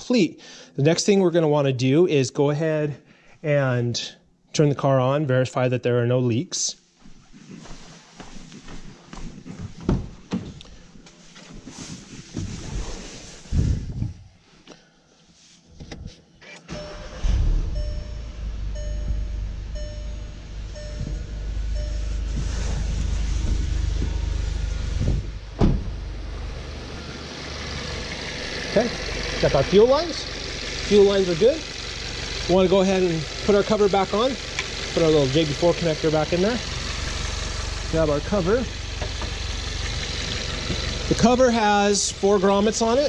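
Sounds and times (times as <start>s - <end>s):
car engine starting and idling: 16.0s - 43.0s
warning chime beeps: 16.7s - 22.7s
car door knocks and thumps: 24.9s - 26.0s, 39.0s - 39.4s.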